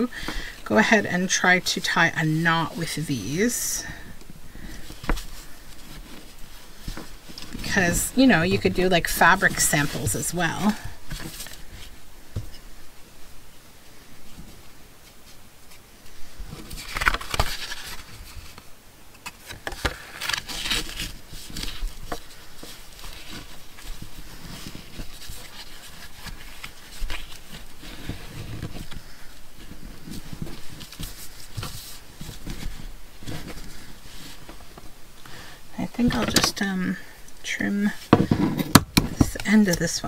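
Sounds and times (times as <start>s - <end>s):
fabric and paper rustling: 0.0s - 13.1s, 13.9s - 40.0s.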